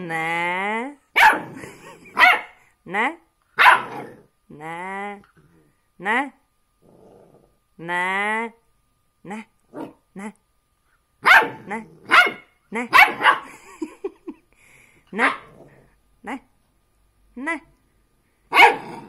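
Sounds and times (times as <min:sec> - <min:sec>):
puppy barking and yipping: 0:02.2 - 0:02.6, 0:03.6 - 0:04.1, 0:11.2 - 0:13.5, 0:15.2 - 0:15.5, 0:18.5 - 0:18.9.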